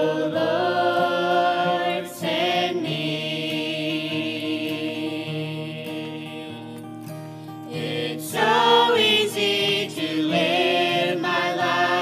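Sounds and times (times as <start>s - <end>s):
acoustic guitar: 0.0s - 12.0s
voices singing gospel in harmony: 0.0s - 12.0s.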